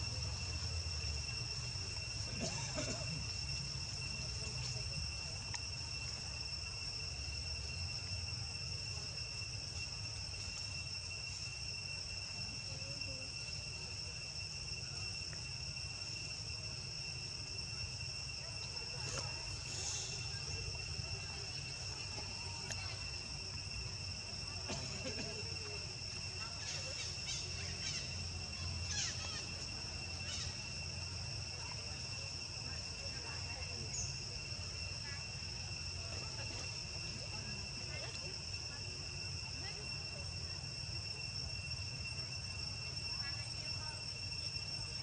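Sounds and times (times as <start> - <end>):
high-pitched insect drone: 0.0 - 45.0.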